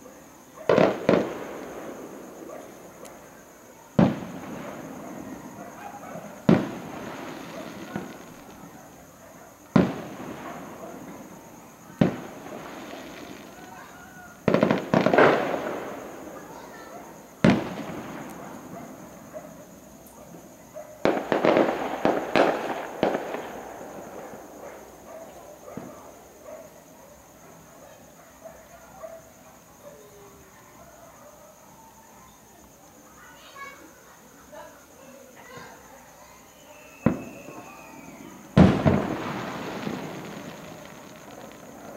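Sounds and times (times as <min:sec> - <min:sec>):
fireworks bursting: 0:00.0 - 0:26.5, 0:36.4 - 0:41.9
faint scattered pops: 0:04.0 - 0:16.4, 0:37.0 - 0:41.9.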